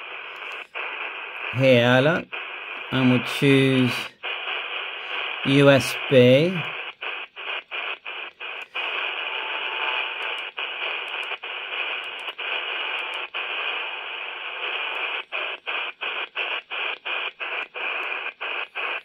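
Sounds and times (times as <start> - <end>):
radio speaker hiss: 0.0 - 19.0.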